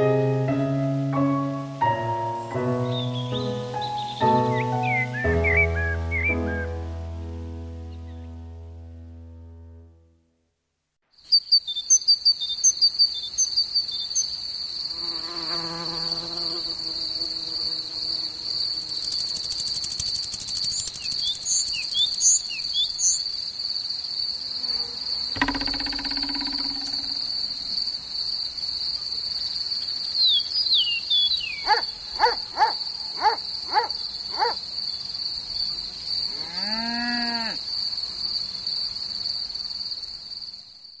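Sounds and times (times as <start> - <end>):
insect chirps and calls: 11.1 - 41.0
cricket trill: 11.2 - 41.0
sharp insect clicks: 18.8 - 23.2, 25.4 - 28.0.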